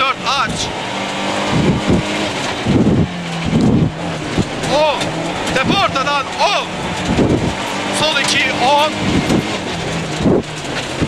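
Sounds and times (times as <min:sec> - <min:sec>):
car engine running high: 0:00.0 - 0:11.0
low road noise on gravel: 0:00.0 - 0:11.0.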